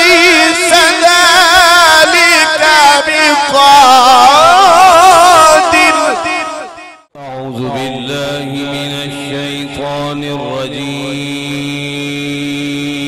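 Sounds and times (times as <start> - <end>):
man chanting into a microphone: 0.0 - 13.0.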